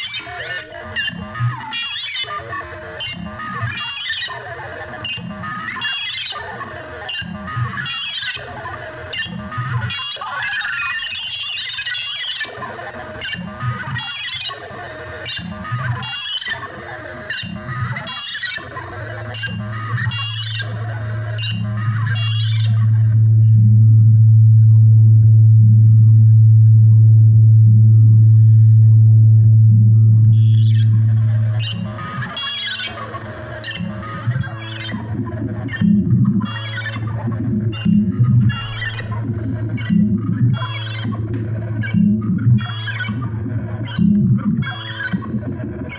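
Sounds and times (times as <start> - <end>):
synth lines: 10.9 - 45.9
ticking electronic percussion: 15.3 - 45.9
deep synth bass note: 21.3 - 45.4.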